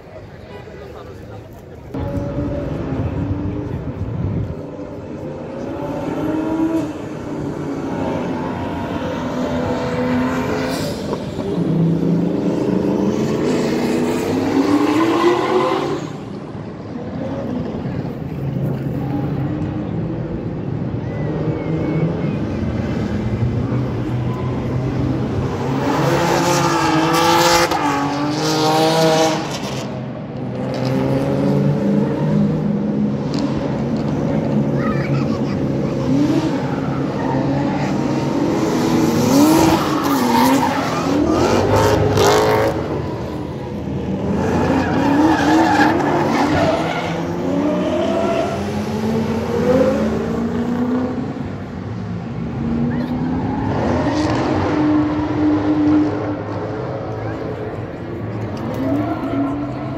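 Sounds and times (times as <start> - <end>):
car engines revving hard: 1.9 - 59.9.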